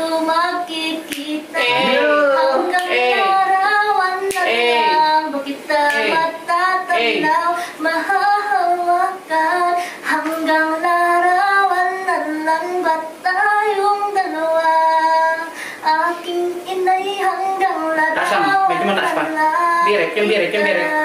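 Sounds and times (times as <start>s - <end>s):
woman singing unaccompanied: 0.0s - 21.0s.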